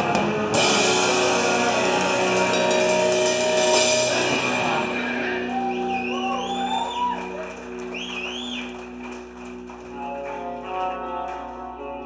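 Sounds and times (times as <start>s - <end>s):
pop-punk band playing live: 0.0s - 12.0s.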